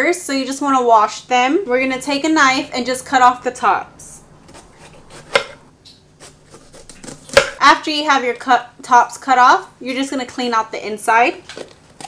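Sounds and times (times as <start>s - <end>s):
knife crunching through pepper: 4.5s - 5.6s, 6.2s - 7.6s.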